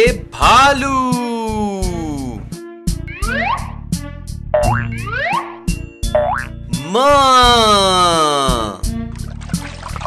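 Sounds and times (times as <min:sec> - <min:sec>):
upbeat children's music: 0:00.0 - 0:10.0
cartoon boing spring effects: 0:04.6 - 0:06.6.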